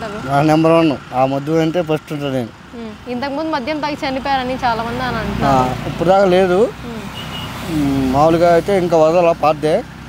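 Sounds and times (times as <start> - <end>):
road traffic hum: 0.0 - 10.0
man speaking: 0.2 - 2.6, 5.4 - 9.9.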